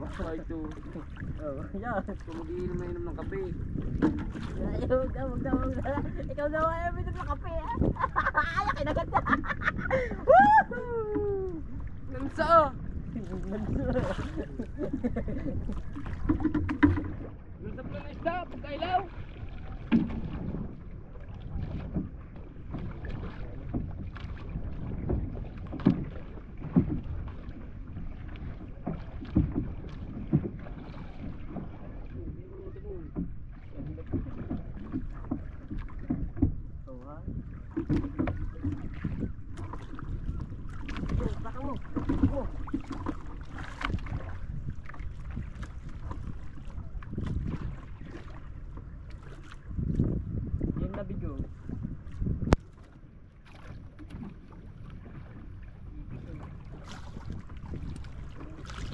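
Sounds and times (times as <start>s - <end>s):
water slapping against hull: 0.0s - 58.9s
wind buffeting microphone: 0.0s - 58.9s.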